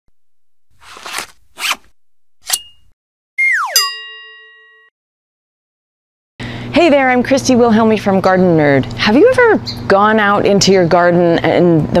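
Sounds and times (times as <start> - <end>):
whistle sliding down: 3.4 - 3.9.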